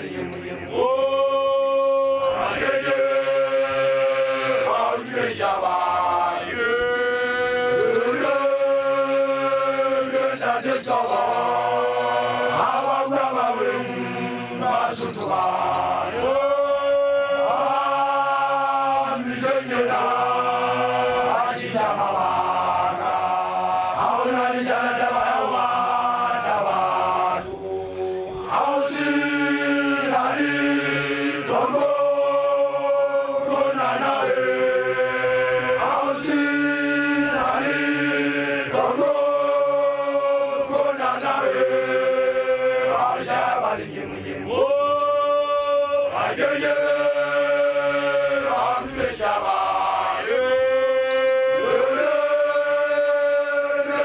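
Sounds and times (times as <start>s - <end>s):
group chanting: 0.0s - 54.0s.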